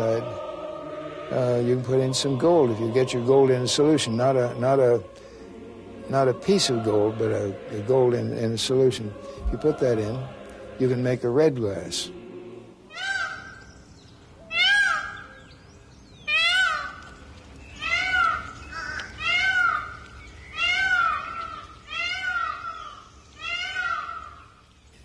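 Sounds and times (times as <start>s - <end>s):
bird calling loudly: 12.2s - 24.8s.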